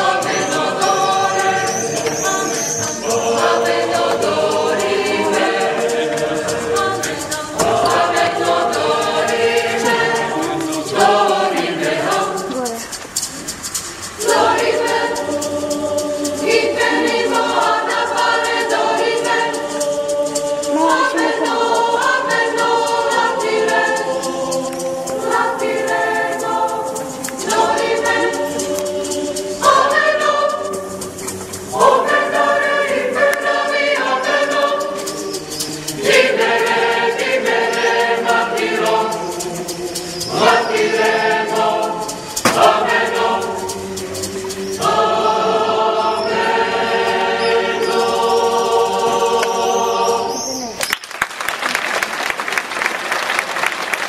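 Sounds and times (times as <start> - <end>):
mixed choir singing: 0.0 - 50.7.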